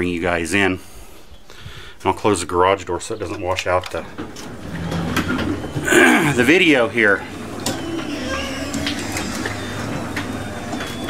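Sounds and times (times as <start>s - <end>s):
garage door mechanism running: 4.3s - 11.0s
person clearing throat: 5.8s - 6.4s.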